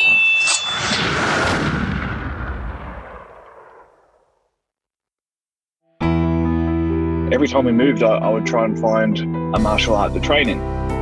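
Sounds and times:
boom-like crash: 0.6s - 4.2s.

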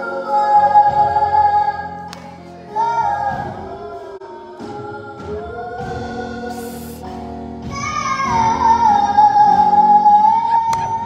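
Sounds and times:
children singing over pa: 0.0s - 7.0s, 7.7s - 11.0s.

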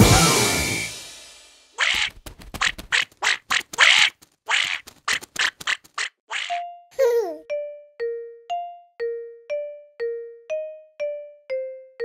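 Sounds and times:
cartoon duckling quacking: 1.8s - 6.6s.

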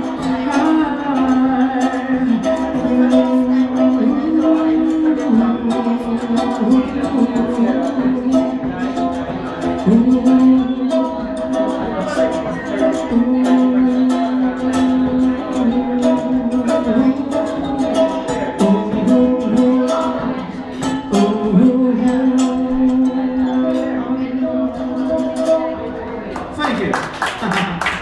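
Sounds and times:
strummed ukulele: 0.0s - 26.8s.

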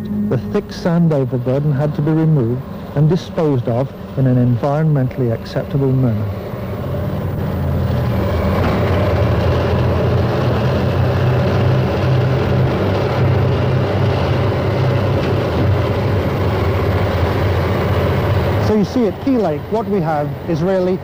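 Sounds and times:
diesel engines droning under load: 0.0s - 21.0s.

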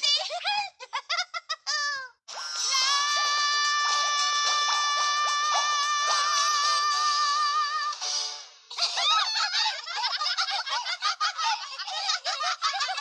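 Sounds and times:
cartoon voices laughing: 0.0s - 2.2s, 8.7s - 13.0s.

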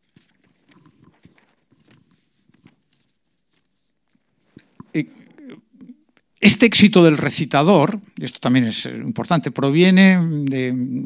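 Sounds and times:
paper notes rustling: 0.0s - 4.8s.

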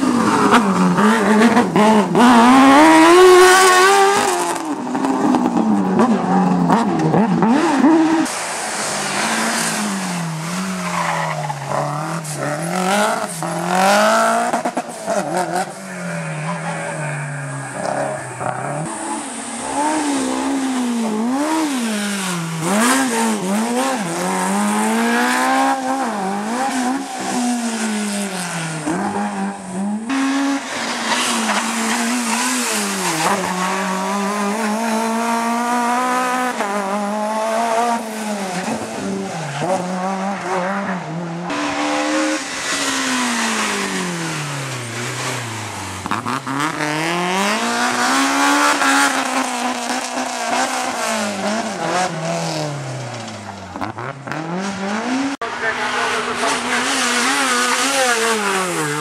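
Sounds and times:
car braking and gear changes: 0.0s - 55.4s
rally car engines revving: 0.0s - 59.0s.

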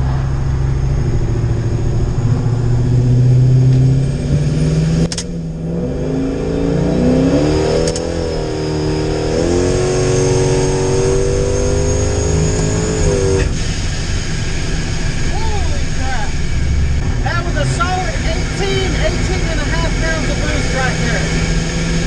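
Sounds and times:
pickup engine accelerating: 0.0s - 22.0s.

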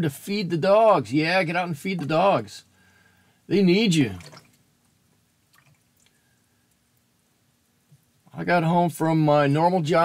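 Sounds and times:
person speaking: 0.0s - 2.7s, 3.5s - 4.4s
faint room hum: 0.0s - 10.0s.

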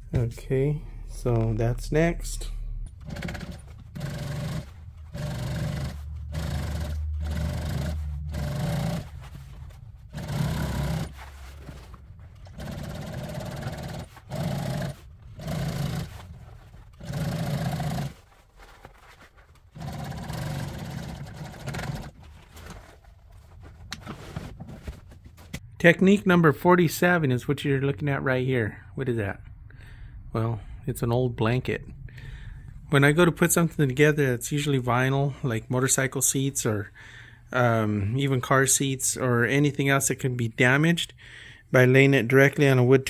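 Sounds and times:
sewing machine stitching: 2.9s - 18.4s, 19.6s - 22.9s.

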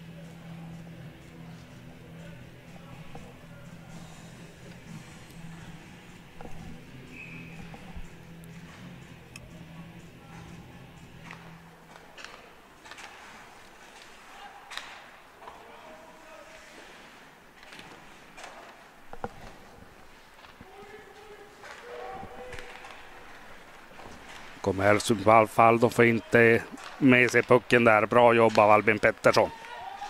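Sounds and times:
low hum: 0.0s - 12.0s
hockey sticks clacking on puck: 11.2s - 15.6s, 17.6s - 25.3s, 26.6s - 30.0s
distant players shouting: 20.6s - 23.2s, 29.3s - 30.0s.

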